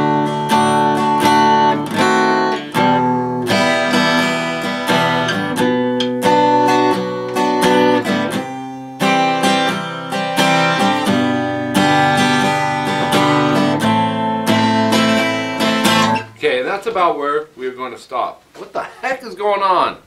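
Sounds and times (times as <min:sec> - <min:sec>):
acoustic guitar strumming: 0:00.0 - 0:17.3.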